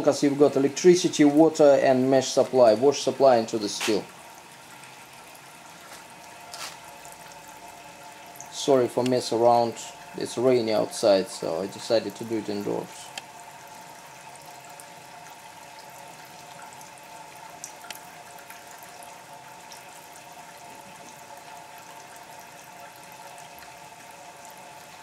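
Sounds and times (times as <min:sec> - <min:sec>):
liquid trickling into bucket: 0:00.2 - 0:25.0.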